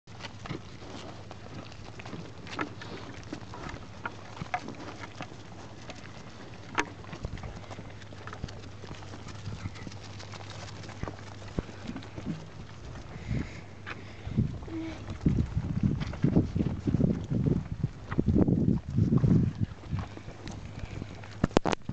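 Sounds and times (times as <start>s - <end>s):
sheep crunching feed pellets: 0.1s - 21.9s.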